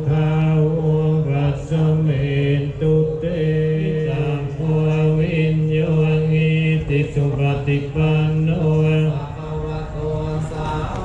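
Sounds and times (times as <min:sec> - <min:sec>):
monks chanting in unison: 0:00.0 - 0:11.0.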